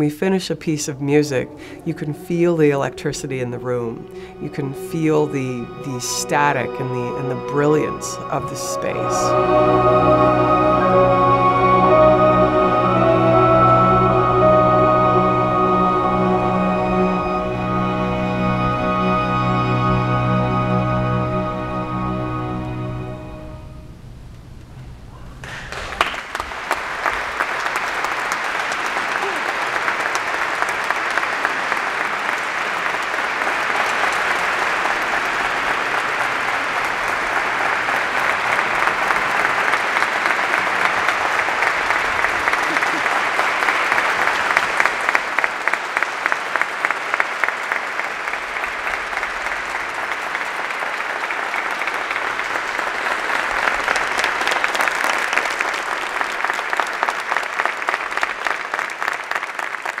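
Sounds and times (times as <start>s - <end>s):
audience applauding: 25.4s - 60.0s.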